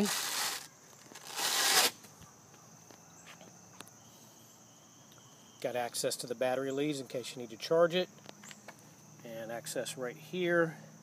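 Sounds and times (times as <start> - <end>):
velcro strips ripping apart: 0.0 - 2.0.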